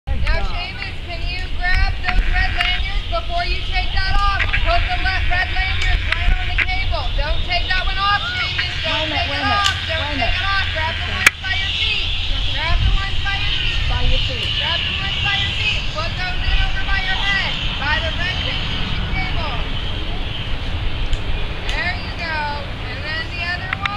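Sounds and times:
indistinct voices talking: 0.0 - 23.9
steady low rumble: 0.0 - 23.9.

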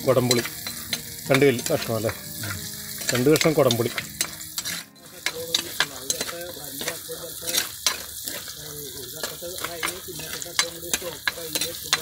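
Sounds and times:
onions sizzling in oil: 0.0 - 12.0
metal spoon scraping a pot: 0.1 - 12.0.

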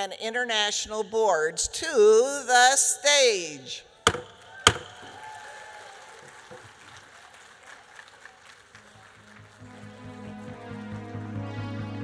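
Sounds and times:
gavel rapping on wood: 4.1 - 5.2
soft music: 9.1 - 12.0.

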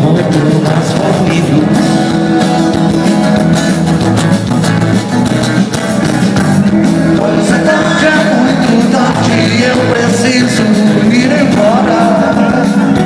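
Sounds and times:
drums: 0.0 - 13.0
electric guitars: 0.0 - 13.0.

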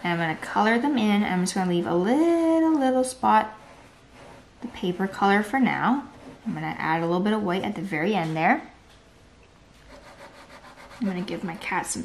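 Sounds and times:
pastel scraping on paper: 9.9 - 12.0.

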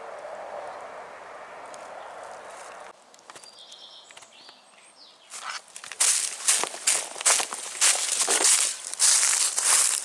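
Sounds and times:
footsteps crunching dry leaves: 1.8 - 2.9, 5.3 - 10.0.

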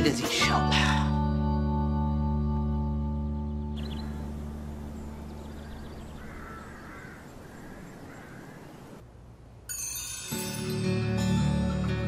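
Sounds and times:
background music: 0.0 - 4.7, 9.8 - 12.0
steady outdoor hiss: 2.8 - 12.0
harsh bird calls: 3.7 - 9.0
chiming music: 9.7 - 12.0.

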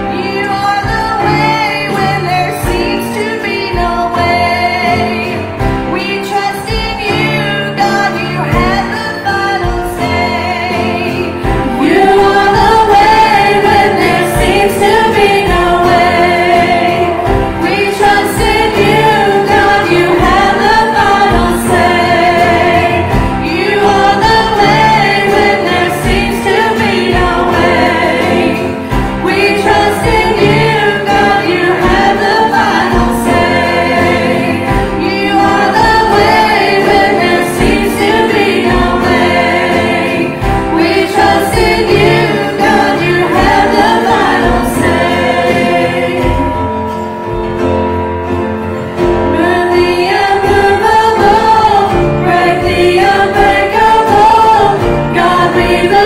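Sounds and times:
band with steady drum beat: 0.0 - 56.0
group singing gospel song: 0.0 - 56.0.

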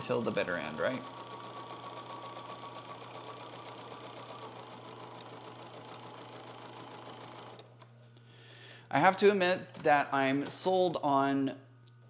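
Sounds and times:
sewing machine stitching: 0.0 - 7.8.

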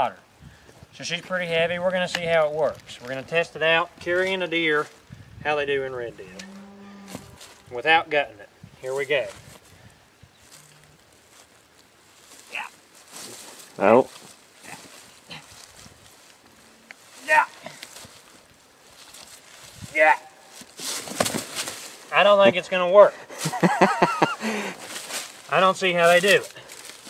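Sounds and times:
dry leaves rustling: 10.4 - 22.4, 23.3 - 27.0
man chuckling: 23.3 - 24.8.

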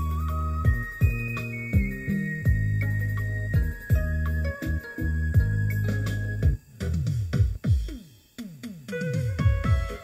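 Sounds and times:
electronic dance music on speaker: 0.0 - 10.0.

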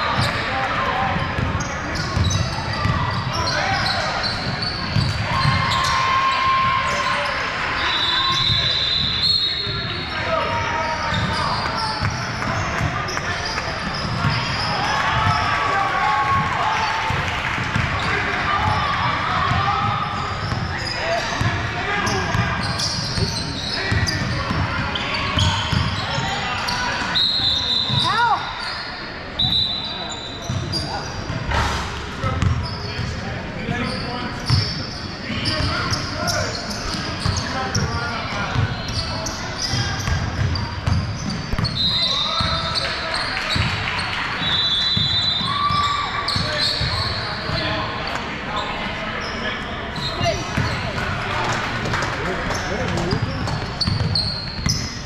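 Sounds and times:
sneakers squeaking: 0.0 - 15.7, 16.3 - 55.0
chatter of voices: 45.4 - 55.0.

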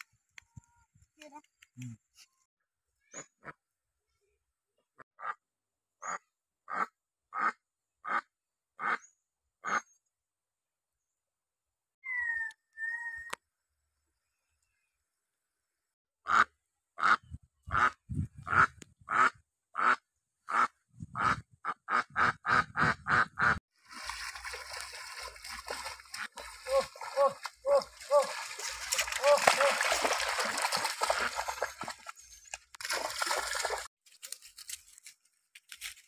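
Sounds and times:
duck quacking: 6.0 - 9.0, 16.3 - 23.6
water splashing from wading: 23.8 - 32.2, 32.8 - 33.9.

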